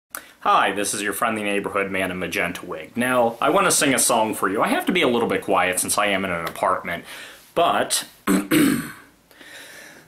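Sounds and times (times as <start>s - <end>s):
man clearing his throat: 8.3s - 9.1s.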